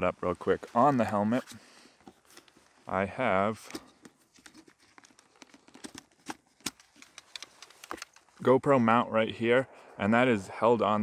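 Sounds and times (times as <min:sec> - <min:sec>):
helmet and plastic mount handled: 0:00.6 - 0:08.4.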